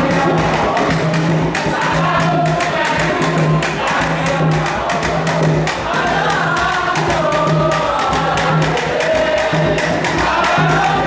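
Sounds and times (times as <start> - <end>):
fast percussion beat: 0.0 - 11.0
group of voices singing: 0.0 - 11.0.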